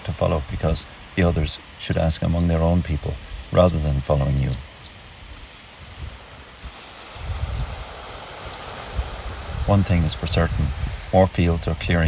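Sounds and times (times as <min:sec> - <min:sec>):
wind buffeting microphone: 0:00.0 - 0:12.0
wind hissing: 0:00.0 - 0:12.0.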